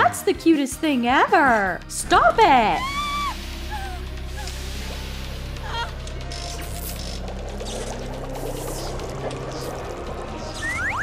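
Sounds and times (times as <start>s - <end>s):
background music with low drone: 0.0s - 11.0s
liquid pouring into glass flask: 6.5s - 11.0s.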